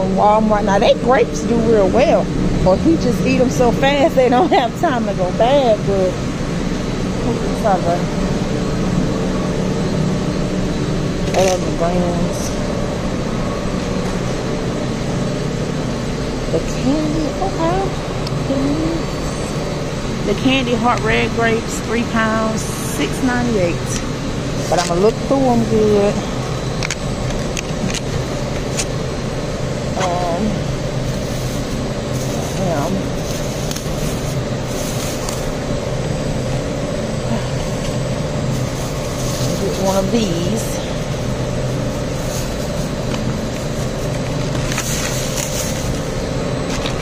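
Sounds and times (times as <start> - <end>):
faint mechanical hum: 0.0 - 47.0
low rumble and hiss: 0.0 - 47.0
plastic bags rustling: 30.9 - 36.5, 37.4 - 47.0.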